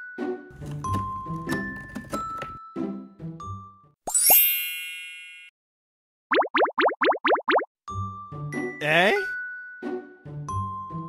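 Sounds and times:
light children's music: 0:00.0 - 0:05.5, 0:07.9 - 0:11.0
cartoon rising plops: 0:06.3 - 0:07.7.

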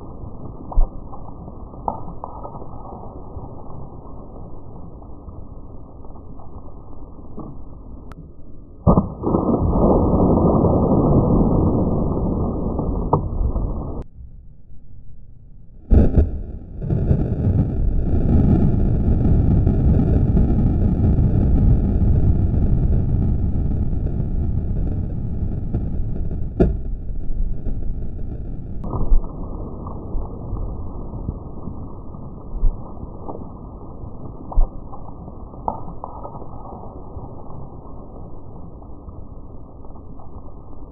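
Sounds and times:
water bursting out of gravel: 0:00.0 - 0:07.7, 0:28.8 - 0:40.9.

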